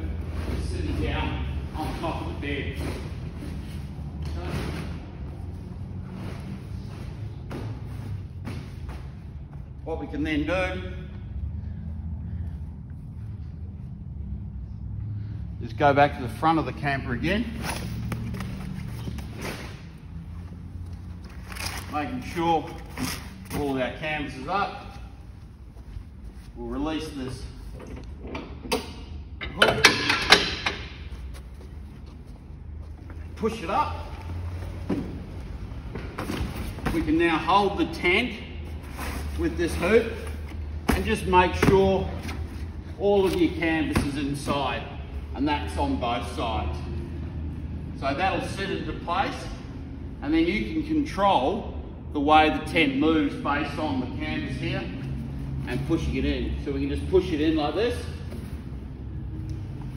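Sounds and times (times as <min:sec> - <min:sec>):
low hum of indoor hall: 0:00.0 - 0:59.9.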